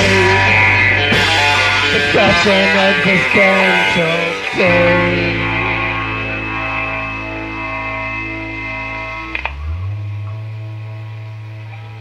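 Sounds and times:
punk rock guitar and bass chords: 0.0 - 12.0.

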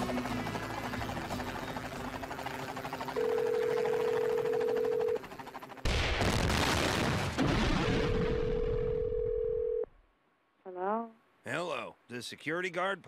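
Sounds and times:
steady phone-like tone: 3.2 - 5.2, 8.3 - 9.8
loud explosions: 5.8 - 8.5.

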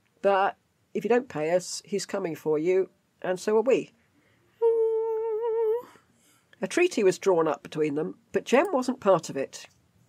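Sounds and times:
woman humming: 4.6 - 6.0.

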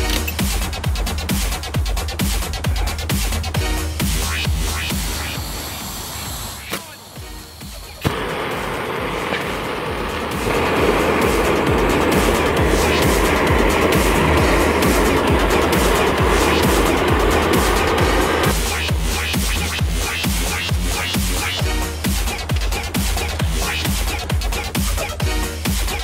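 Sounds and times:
electronic music with beat: 0.0 - 26.0
gas torches hissing: 0.0 - 26.0.

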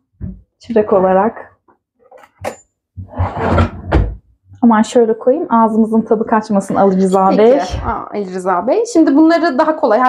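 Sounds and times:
drawer knocking shut: 2.4 - 4.2.

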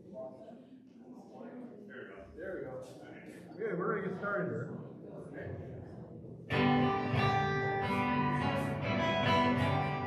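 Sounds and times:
guitars strumming chords: 6.5 - 10.0.

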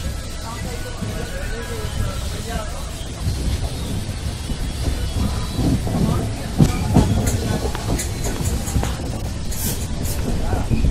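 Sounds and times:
passenger train rumbling: 0.0 - 10.9.

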